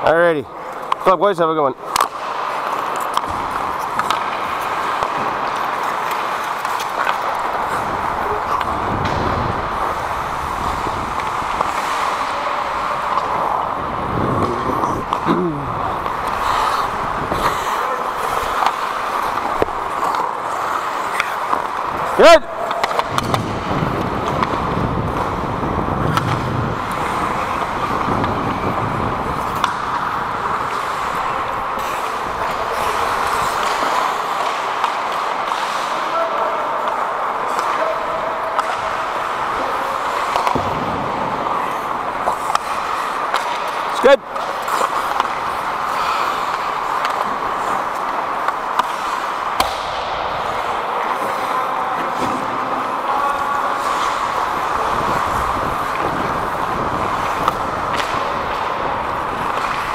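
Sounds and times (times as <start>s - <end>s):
players' voices: 0.0s - 59.9s
skate blades on ice: 0.0s - 59.9s.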